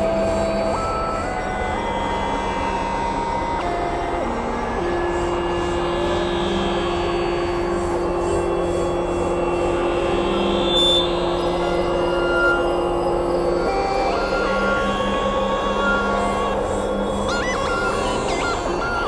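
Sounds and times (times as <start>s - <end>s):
noisy synthesizer drone: 0.0s - 19.0s.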